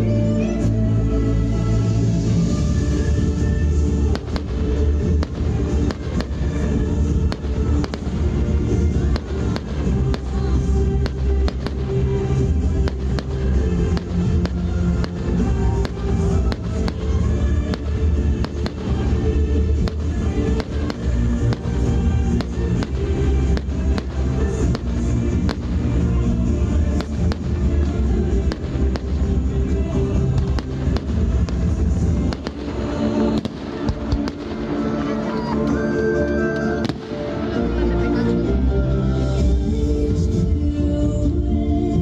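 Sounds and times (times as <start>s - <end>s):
loud music: 0.0s - 42.0s
firework bursts and crackles: 2.5s - 35.5s.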